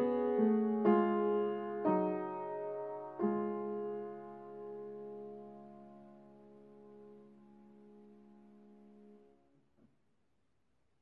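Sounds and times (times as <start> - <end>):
piano chord: 0.0 - 9.4.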